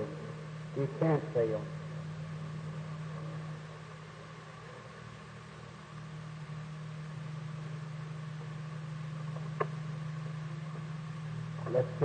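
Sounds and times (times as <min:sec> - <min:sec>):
tape hum and hiss: 0:00.0 - 0:12.0.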